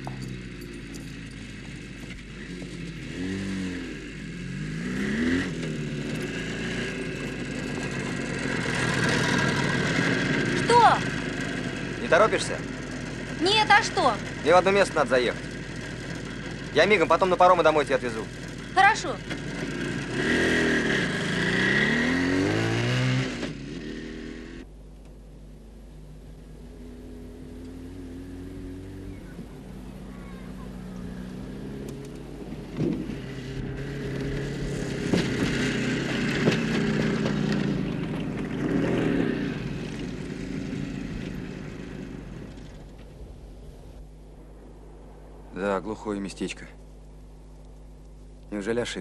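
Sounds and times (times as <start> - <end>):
motorcycle engine revving: 0.0 - 24.7, 25.6 - 45.5.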